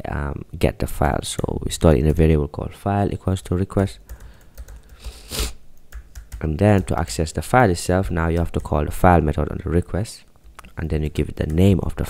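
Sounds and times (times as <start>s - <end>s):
computer keyboard typing: 4.0s - 5.2s, 5.8s - 7.3s, 8.0s - 9.2s, 11.1s - 12.0s
short hiss: 5.0s - 5.6s.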